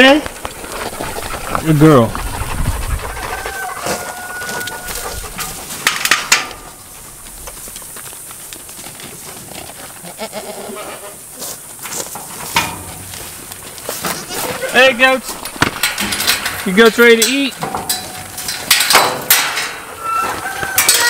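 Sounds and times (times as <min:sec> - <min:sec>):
goats bleating: 0:10.0 - 0:11.2.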